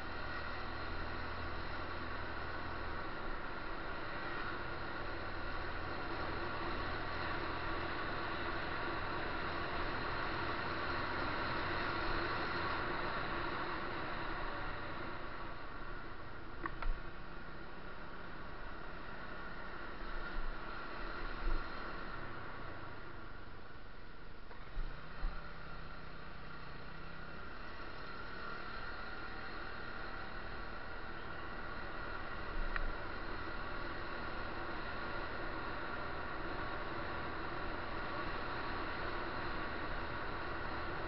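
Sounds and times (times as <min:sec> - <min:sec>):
faint whining tones: 0:00.0 - 0:41.0
muffled vehicle running drone: 0:00.0 - 0:41.0.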